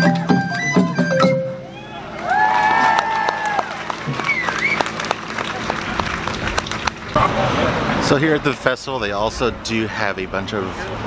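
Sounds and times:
audience applauding: 0:02.0 - 0:07.5.

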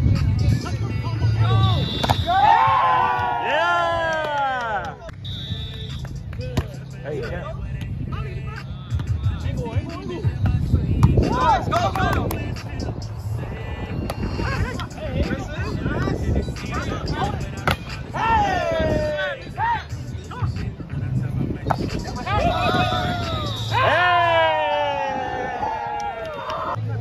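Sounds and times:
players shouting and cheering: 0:00.2 - 0:27.0.

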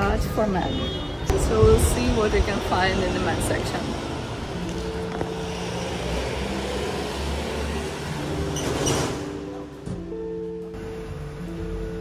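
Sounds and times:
cars passing: 0:00.0 - 0:12.0
loud traffic rush: 0:00.0 - 0:12.0
soft background music: 0:00.0 - 0:12.0.

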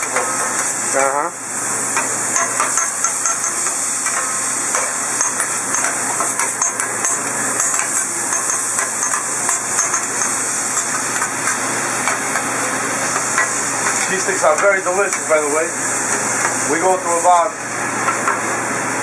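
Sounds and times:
griddle sizzling: 0:00.0 - 0:19.0.

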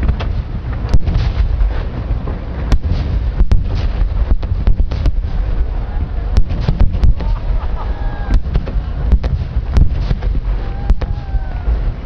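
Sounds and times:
deep booming rumble: 0:00.0 - 0:12.0
fireworks cracking: 0:00.0 - 0:12.0.

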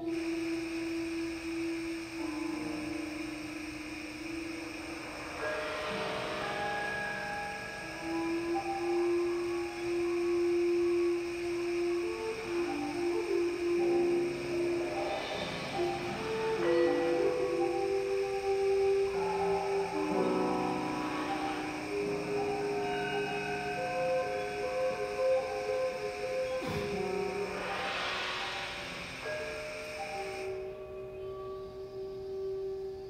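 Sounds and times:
ambient ensemble music: 0:00.0 - 0:33.0.

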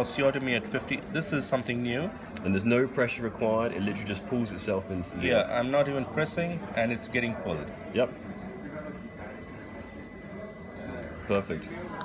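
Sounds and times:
low background noise: 0:00.0 - 0:12.0
dental drill high whine: 0:03.4 - 0:12.0.

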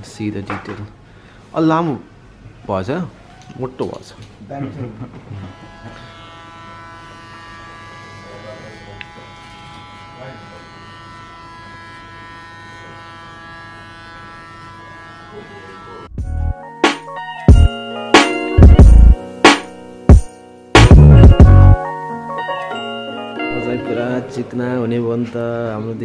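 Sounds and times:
hair clippers buzzing: 0:05.2 - 0:16.1, 0:17.6 - 0:21.8
person speaking: 0:23.4 - 0:25.4.

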